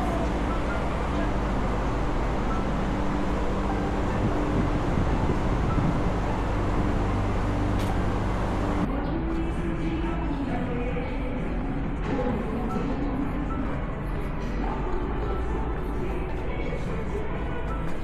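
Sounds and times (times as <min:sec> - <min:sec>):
road traffic rumble: 0:00.0 - 0:08.9
low hum: 0:00.0 - 0:16.2
background music: 0:00.0 - 0:18.0.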